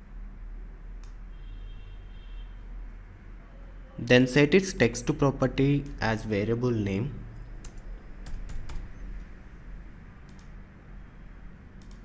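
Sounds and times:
computer keyboard typing: 7.6s - 8.9s, 10.3s - 10.6s, 11.8s - 12.0s.

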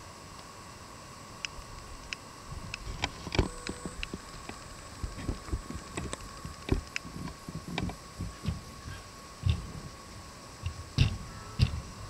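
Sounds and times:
hooves thudding on grass: 5.1s - 10.0s.

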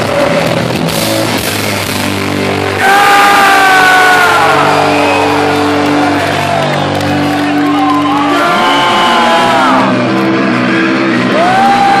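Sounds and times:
distorted electric guitar: 0.0s - 12.0s.

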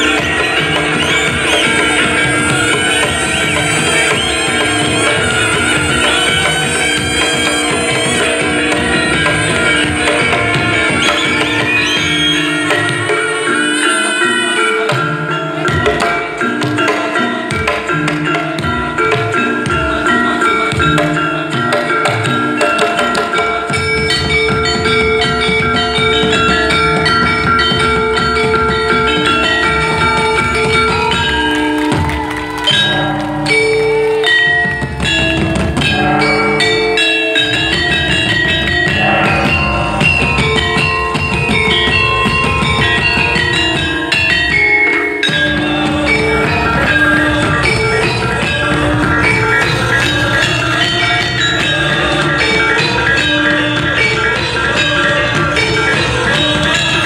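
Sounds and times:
drum strokes: 0.0s - 57.0s
gamelan music: 0.0s - 57.0s
metallophone melody: 0.0s - 57.0s.

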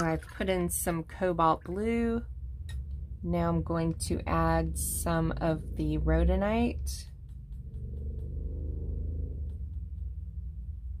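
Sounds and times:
low room rumble: 0.0s - 11.0s
paintbrush ticking on ceramic palette: 6.8s - 10.8s.

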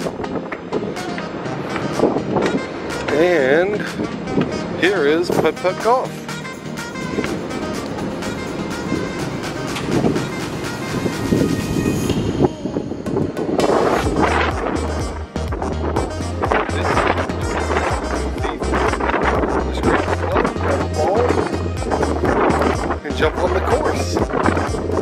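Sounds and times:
background music with steady beat: 0.0s - 25.0s
deep bass line: 13.6s - 25.0s.

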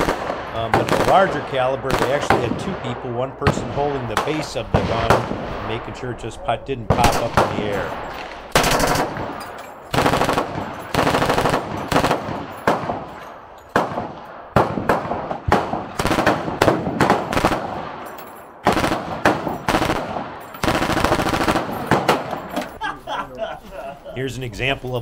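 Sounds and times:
automatic gunfire bursts: 0.0s - 2.6s, 8.5s - 13.0s, 13.8s - 17.9s, 18.6s - 22.5s.

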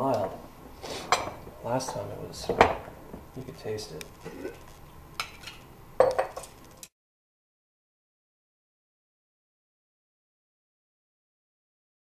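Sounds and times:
metal tongs clinking on stoneware: 5.2s - 6.6s.

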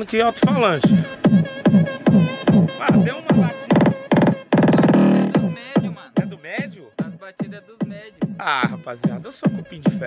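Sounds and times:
loud electronic dance beat: 0.2s - 10.0s.

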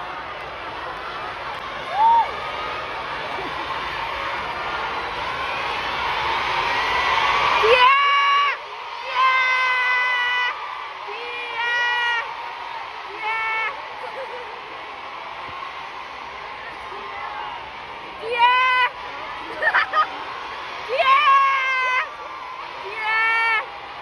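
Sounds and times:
crowd screaming and cheering: 0.0s - 24.0s.

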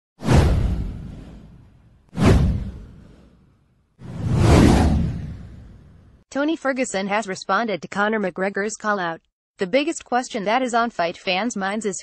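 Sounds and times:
deep booming whoosh: 0.2s - 6.2s.

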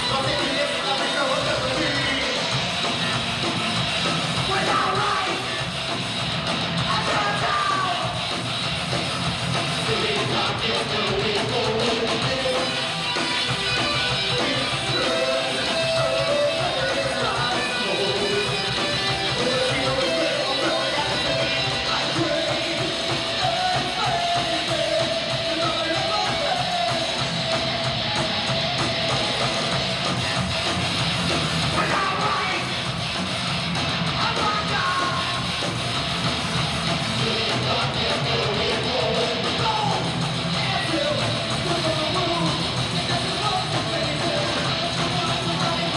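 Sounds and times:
rock band playing live: 0.0s - 45.9s.

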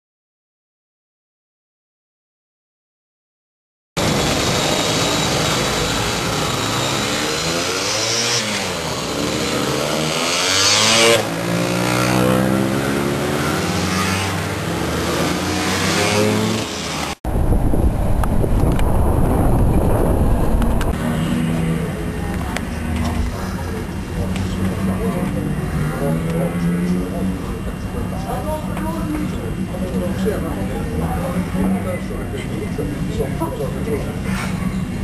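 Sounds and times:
scooter engines revving past: 4.0s - 17.2s, 20.9s - 28.2s
low engine hum: 17.3s - 28.2s.

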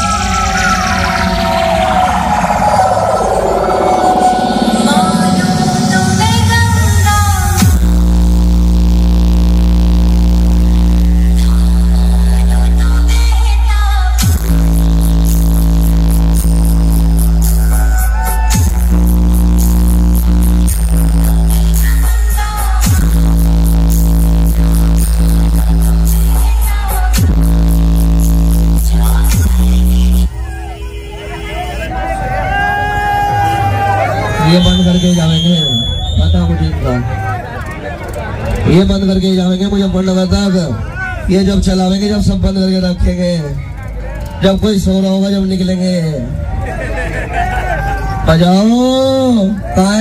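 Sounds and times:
falling synth sweep: 0.0s - 13.1s
deep bass drone: 0.0s - 30.6s, 33.4s - 50.0s
loud electronic dance music: 0.0s - 46.7s, 47.3s - 50.0s
crowd talking and calling out: 0.0s - 50.0s.

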